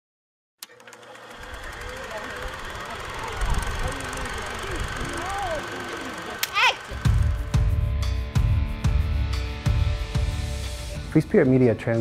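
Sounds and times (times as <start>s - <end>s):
distant voices: 0.9s - 7.4s.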